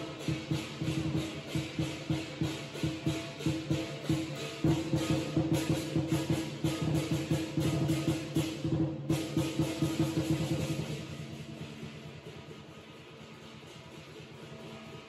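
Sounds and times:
big drum beaten fast: 0:00.0 - 0:15.0
cymbals crashing: 0:00.0 - 0:15.0.

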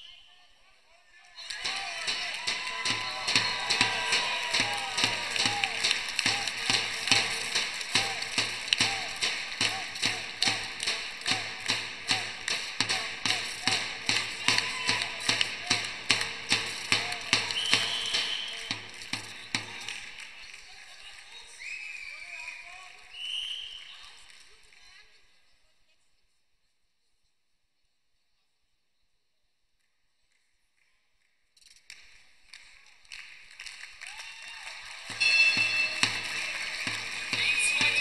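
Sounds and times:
crowd noise: 0:00.0 - 0:24.5, 0:34.1 - 0:38.0
people shouting: 0:01.4 - 0:18.7, 0:35.2 - 0:38.0
spectators clapping in unison: 0:01.4 - 0:23.1, 0:31.6 - 0:38.0.

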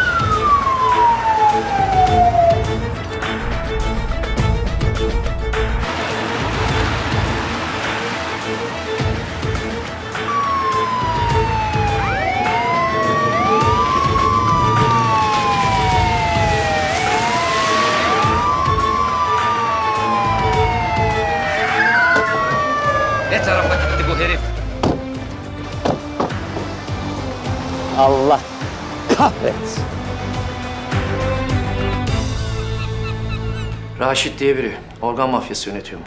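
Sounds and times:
police sirens wailing: 0:00.0 - 0:04.5, 0:07.0 - 0:25.5
dramatic music with beat: 0:00.0 - 0:34.0.

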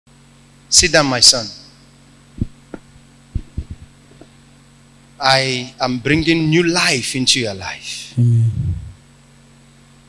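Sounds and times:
electrical hum: 0:00.4 - 0:10.0
soft low thumps: 0:02.4 - 0:04.3, 0:08.5 - 0:09.0.

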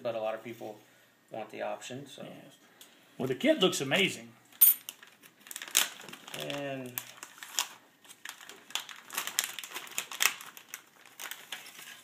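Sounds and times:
plastic packaging crinkling: 0:04.8 - 0:12.0.

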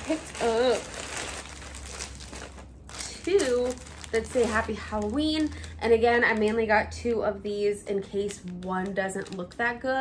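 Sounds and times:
plastic bag crinkling: 0:00.0 - 0:07.0, 0:07.9 - 0:10.0.

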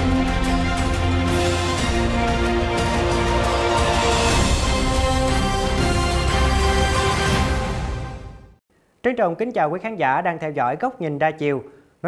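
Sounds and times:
closing chord of theme music: 0:00.0 - 0:08.5.

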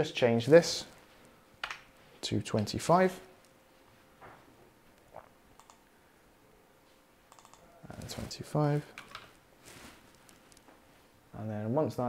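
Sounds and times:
faint computer clicks: 0:05.6 - 0:05.8, 0:07.3 - 0:07.6.

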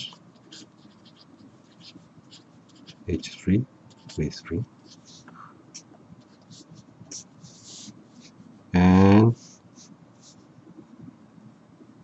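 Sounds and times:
pen scratching on paper: 0:00.0 - 0:08.4.

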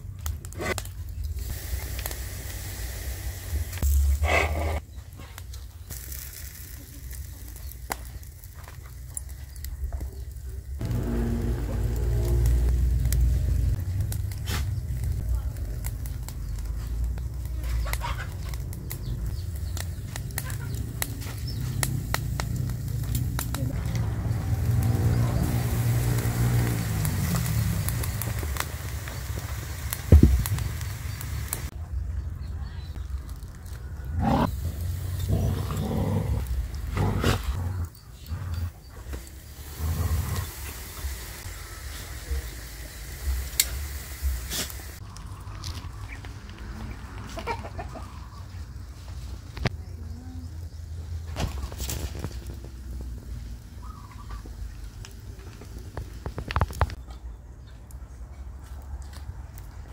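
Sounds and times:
marinade sizzling on hot meat: 0:00.0 - 0:57.0
charcoal fire crackling and popping: 0:00.0 - 0:59.9
low rumble: 0:09.7 - 0:17.7, 0:18.5 - 0:42.3
low humming tone: 0:10.8 - 0:14.0
chicken clucking: 0:17.6 - 0:18.6, 0:46.8 - 0:48.6.

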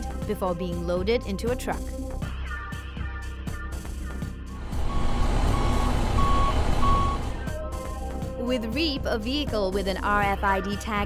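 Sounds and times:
background music: 0:00.0 - 0:11.0
engine rumble: 0:04.3 - 0:08.5
reversing alarm beeping: 0:04.6 - 0:07.6.

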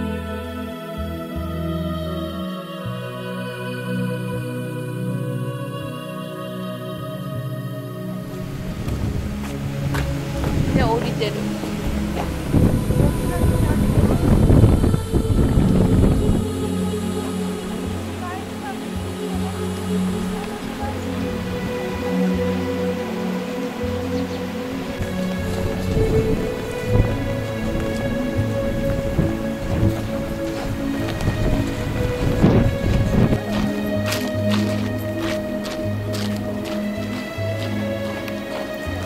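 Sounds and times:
low held background music: 0:00.0 - 0:39.0
wind buffeting microphone: 0:08.2 - 0:39.0.

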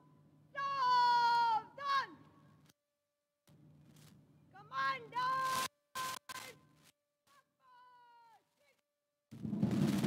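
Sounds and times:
woman shouting drill command: 0:00.6 - 0:02.2, 0:04.6 - 0:06.2.

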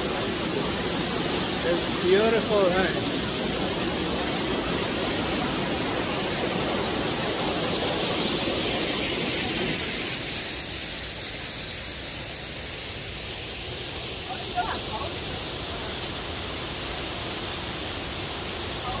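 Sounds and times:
waterfall rushing: 0:00.0 - 0:19.0.

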